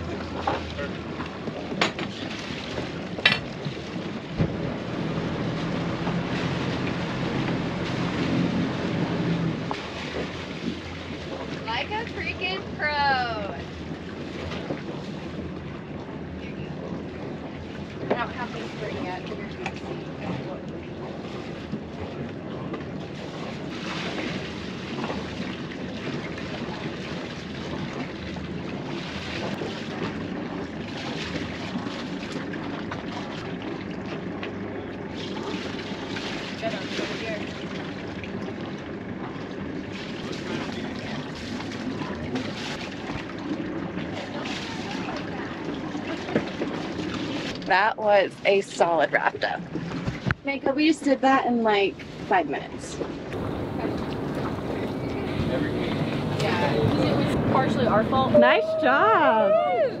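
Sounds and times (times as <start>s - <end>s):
boat engine running: 0.0s - 60.0s
wind on microphone: 52.8s - 60.0s
people calling out: 57.9s - 60.0s.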